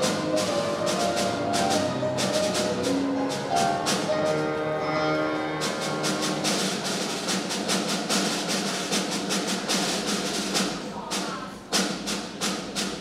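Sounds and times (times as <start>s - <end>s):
flute: 0.0s - 4.9s
grand piano: 0.0s - 10.4s
snare drum strokes: 0.0s - 13.0s.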